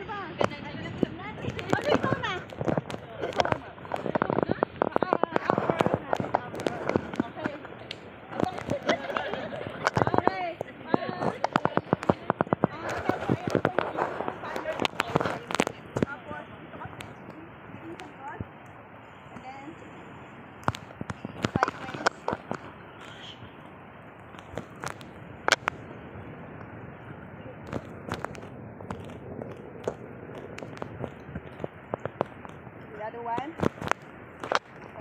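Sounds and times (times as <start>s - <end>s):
people talking: 0.0s - 18.6s, 19.3s - 20.0s, 20.7s - 23.5s, 27.0s - 29.5s, 30.6s - 33.8s, 34.5s - 35.0s
sharp clicks or pops: 1.4s - 16.2s, 20.6s - 23.5s, 24.2s - 25.9s, 27.6s - 35.0s.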